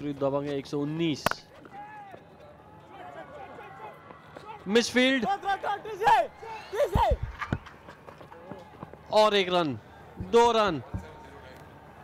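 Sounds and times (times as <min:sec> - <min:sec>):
dull low thuds: 0:10.2 - 0:11.2.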